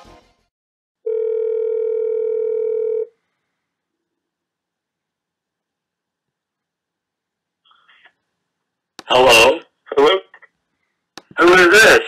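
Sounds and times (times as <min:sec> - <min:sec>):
background music: 0:00.0 - 0:00.5
telephone ringback tone: 0:01.0 - 0:03.1.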